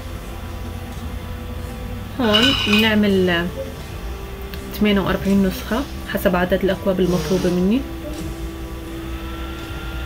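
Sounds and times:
machine hum: 7.8s - 10.0s.

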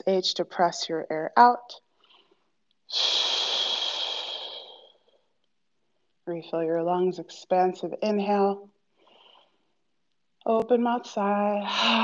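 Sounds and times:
woman exhaling with a hiss: 2.9s - 4.9s.

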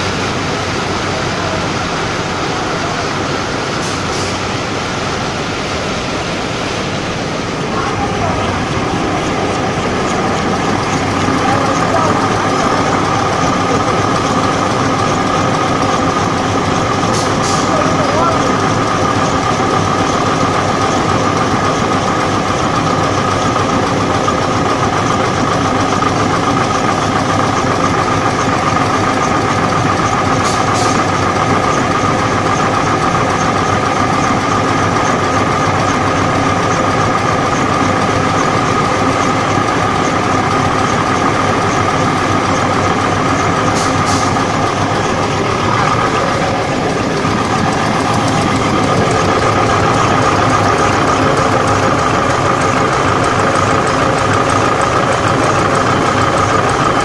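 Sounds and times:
log saw machine whining: 0.0s - 57.0s.

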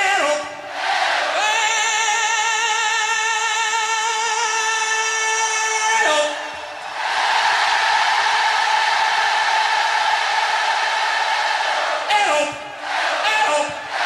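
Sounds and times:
man singing through pa: 0.0s - 0.7s, 1.3s - 6.7s, 12.0s - 14.0s
stadium crowd singing: 0.0s - 3.1s, 6.0s - 14.0s.

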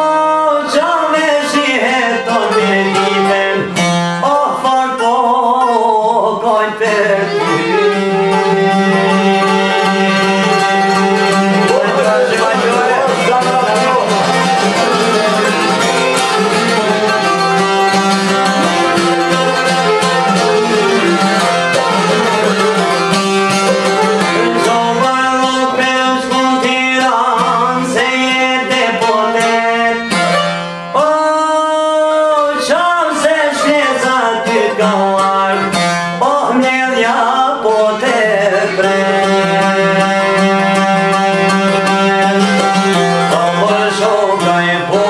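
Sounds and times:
man singing: 0.0s - 23.0s, 23.8s - 45.0s
plucked lute melody: 0.0s - 45.0s.

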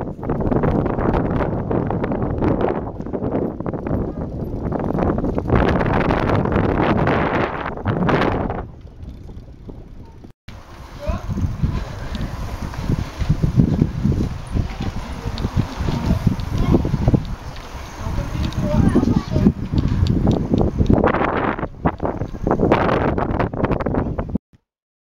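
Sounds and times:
wind rushing over microphone: 0.0s - 24.4s
children's voices: 10.9s - 12.9s, 13.9s - 20.0s.

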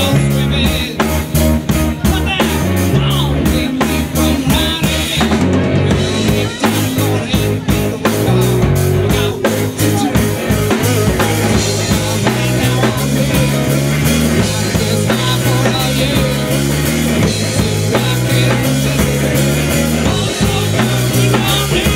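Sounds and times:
drum kit beat: 0.0s - 21.9s
electric bass: 0.0s - 21.9s
electric guitar: 0.0s - 21.9s
person singing: 0.0s - 21.9s.

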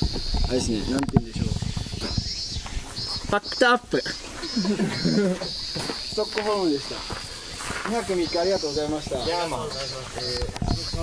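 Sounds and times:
insect chirring: 0.0s - 11.0s
people's voices: 2.8s - 11.0s.

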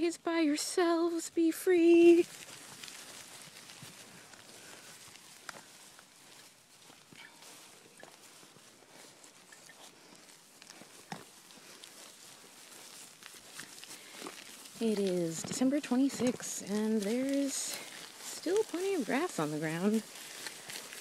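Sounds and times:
footsteps through grass: 0.0s - 21.0s.

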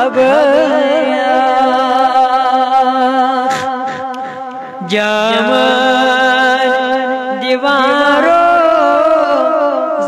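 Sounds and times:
boy singing: 0.0s - 4.1s, 4.8s - 10.0s.

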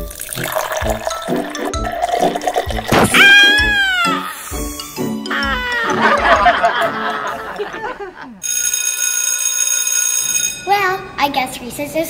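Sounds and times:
school bell ringing: 8.4s - 11.1s.

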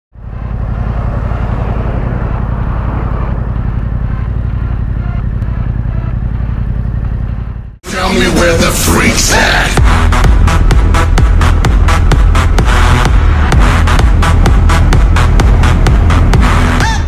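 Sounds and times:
motorcycle engine idling: 0.2s - 7.8s.

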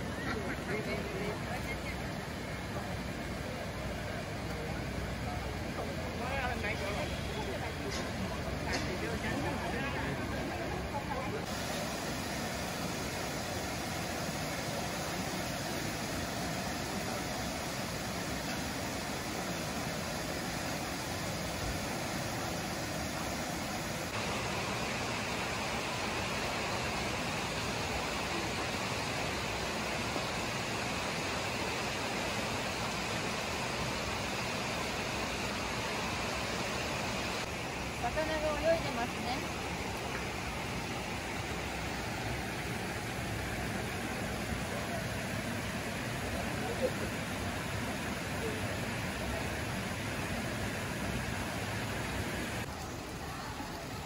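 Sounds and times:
river water rushing over weirs: 0.0s - 54.0s.

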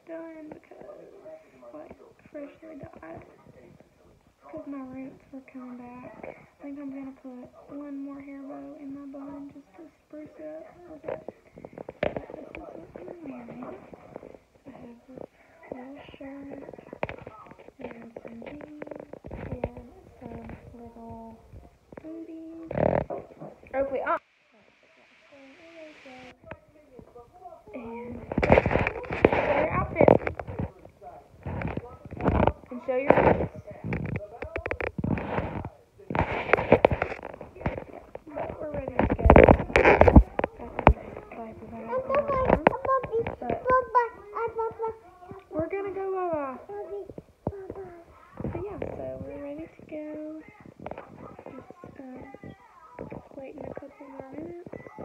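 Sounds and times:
indistinct voices: 0.0s - 55.0s
phone rubbing against clothing: 1.7s - 24.2s, 27.8s - 55.0s
toddler's voice: 40.8s - 45.5s, 46.7s - 49.0s.

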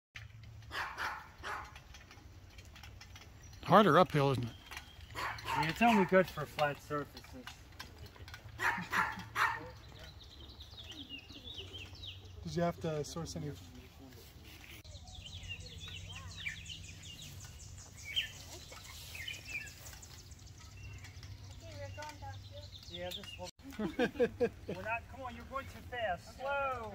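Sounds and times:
songbirds chirping: 0.2s - 26.9s
dog barking: 0.7s - 1.8s, 5.2s - 6.2s, 8.6s - 9.8s.

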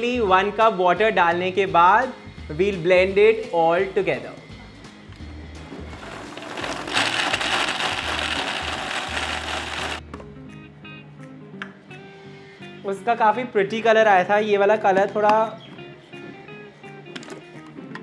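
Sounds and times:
soft background music: 0.0s - 18.0s
blender running: 5.7s - 10.0s.

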